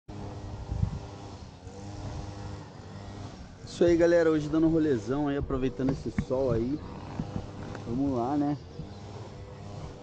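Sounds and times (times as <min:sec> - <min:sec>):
motorcycle engine idling: 0:02.3 - 0:10.0.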